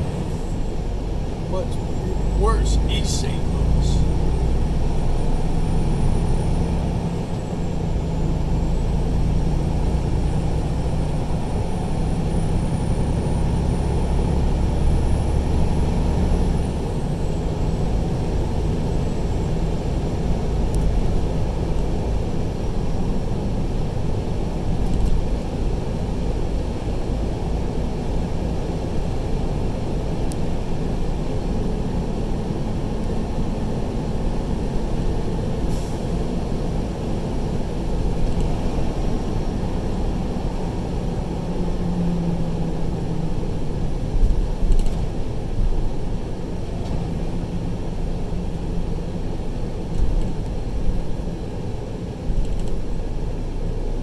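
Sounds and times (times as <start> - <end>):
truck engine and tyres rumbling: 0.0 - 54.0.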